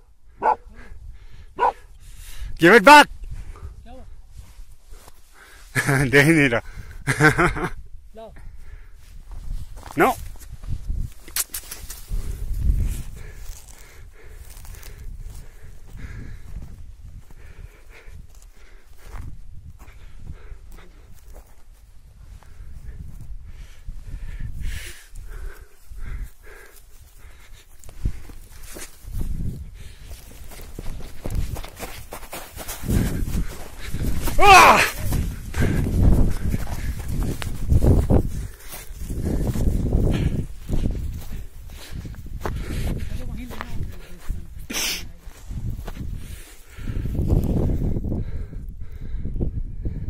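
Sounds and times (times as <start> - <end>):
man saying a word: 2.6 - 3.1
footsteps in dry grass: 4.1 - 5.8, 9.0 - 48.1.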